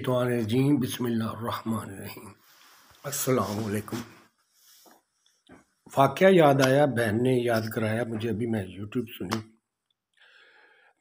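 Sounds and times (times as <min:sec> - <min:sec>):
man speaking: 0:00.0 - 0:02.4, 0:03.0 - 0:04.2, 0:05.9 - 0:09.5.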